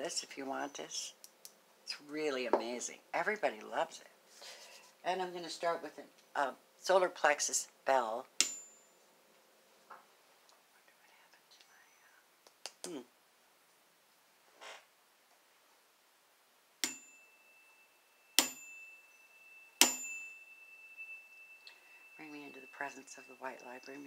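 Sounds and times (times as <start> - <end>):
small bell ringing: 8.4 - 9.0, 16.8 - 24.0.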